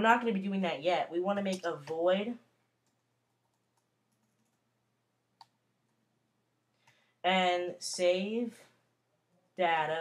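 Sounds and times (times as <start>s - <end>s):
keyboard and mouse clicks: 1.4s - 2.1s, 2.8s - 4.7s, 5.4s - 6.0s.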